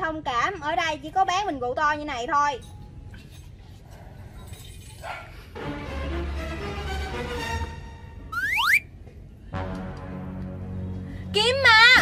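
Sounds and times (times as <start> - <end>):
background music: 5.6 - 12.0
rising slide whistle: 8.3 - 8.9.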